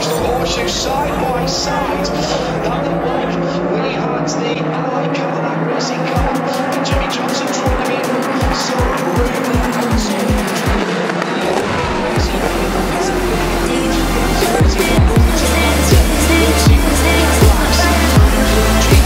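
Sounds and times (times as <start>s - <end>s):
background music: 0.0s - 19.0s
race cars passing: 0.0s - 19.0s
low drum thumps: 11.7s - 12.9s.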